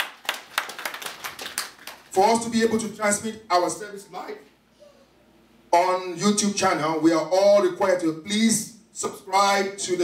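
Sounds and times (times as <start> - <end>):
people clapping: 0.0 - 2.1.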